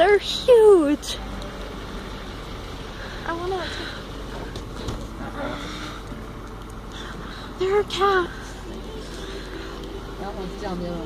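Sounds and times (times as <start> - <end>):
truck engine hum: 0.0 - 11.0.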